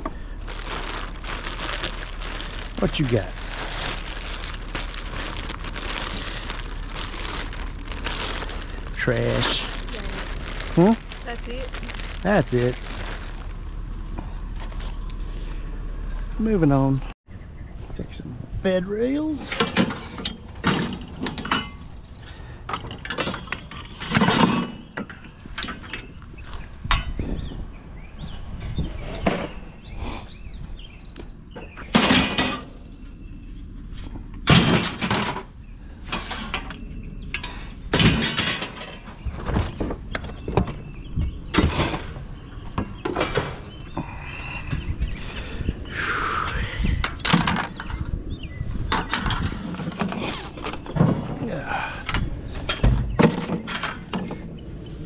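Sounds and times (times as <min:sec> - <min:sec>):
scrap metal clanking and banging: 0:19.4 - 0:21.9, 0:22.7 - 0:27.3, 0:34.4 - 0:40.0.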